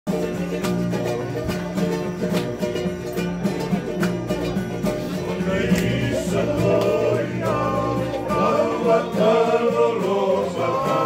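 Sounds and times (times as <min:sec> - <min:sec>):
strummed string instruments: 0:00.1 - 0:11.0
group singing: 0:05.0 - 0:11.0.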